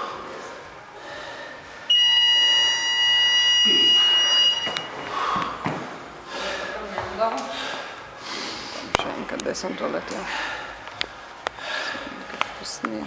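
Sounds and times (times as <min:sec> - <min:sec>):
timer buzzer long high-pitched beep: 0:01.9 - 0:04.9.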